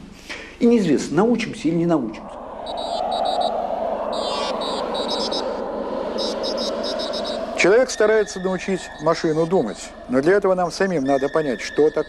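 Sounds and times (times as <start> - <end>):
steady rushing noise: 2.2 - 9.0
high electronic bleeping: 2.6 - 3.5, 6.2 - 9.9.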